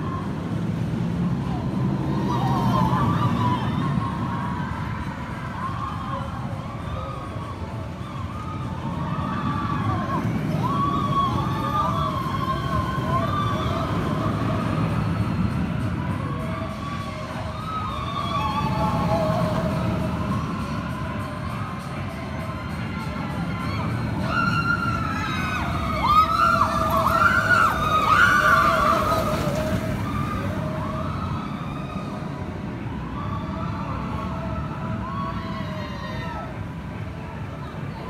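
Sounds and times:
roller coaster train rumbling: 0:00.0 - 0:38.0
riders screaming: 0:01.6 - 0:16.1, 0:23.0 - 0:36.8.

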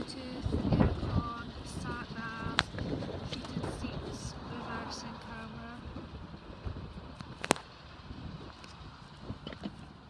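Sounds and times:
wind rumble: 0:00.0 - 0:10.0.

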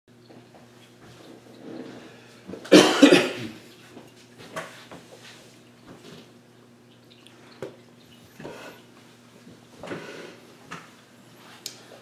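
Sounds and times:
faint steady hum: 0:00.1 - 0:12.0
man coughing: 0:02.7 - 0:03.6.

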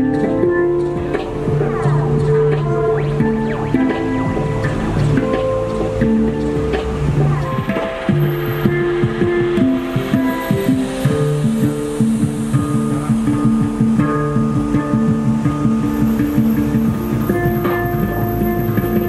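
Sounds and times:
electronic beat: 0:00.0 - 0:19.0
handpan ringing notes: 0:00.0 - 0:19.0.

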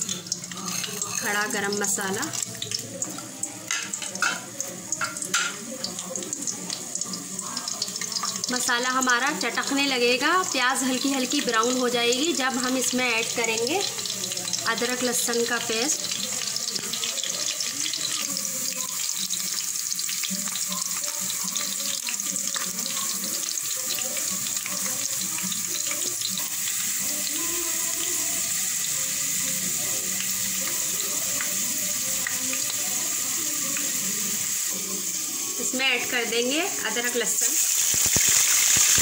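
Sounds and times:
onions and spices frying in oil: 0:00.0 - 0:39.0.

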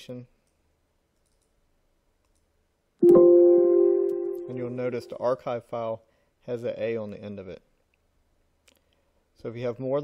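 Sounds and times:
faint computer mouse clicks: 0:01.2 - 0:01.6, 0:02.2 - 0:02.5.

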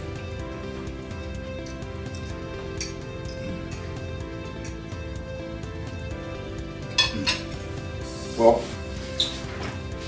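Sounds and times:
background music: 0:00.0 - 0:10.0
metal fork clinking on plate: 0:07.0 - 0:07.4.

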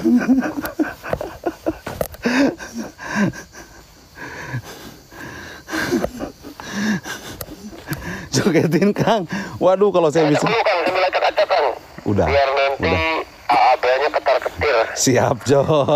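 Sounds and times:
man's breathy laughter: 0:00.0 - 0:08.3.

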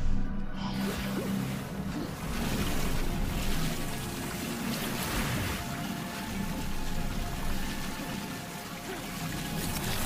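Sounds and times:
wet liquid rushing: 0:00.8 - 0:10.0.

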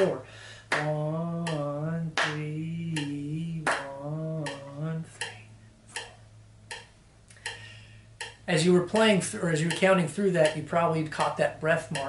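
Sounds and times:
man counting aloud: 0:00.0 - 0:00.2, 0:08.5 - 0:12.0
man clapping a rhythm: 0:00.0 - 0:05.4, 0:08.2 - 0:12.0.

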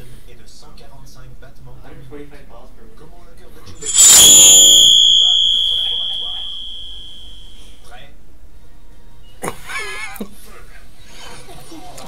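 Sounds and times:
high ringing from television speaker: 0:03.8 - 0:07.6.

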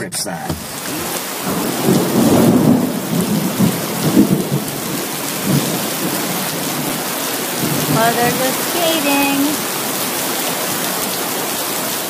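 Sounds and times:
heavy rain pouring: 0:00.5 - 0:12.0
low rumble of thunder: 0:00.8 - 0:08.0.

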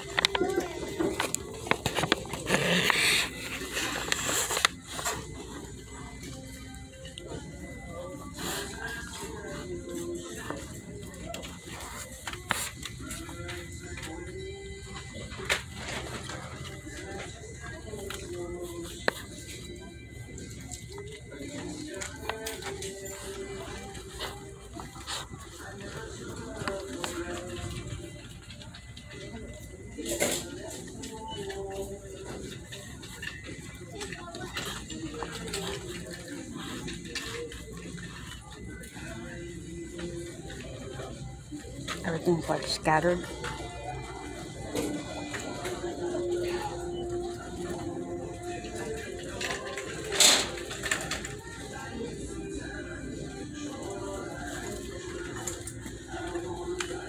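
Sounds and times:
music with singing over speakers: 0:00.0 - 0:57.0.

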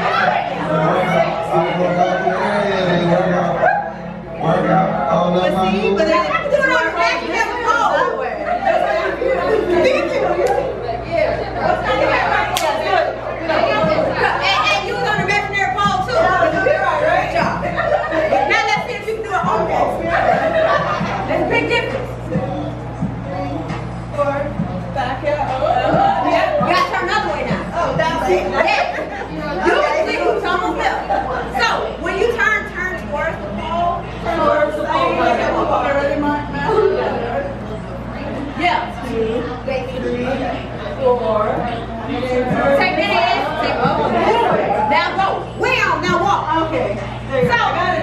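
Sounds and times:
women chattering: 0:05.5 - 0:48.0.

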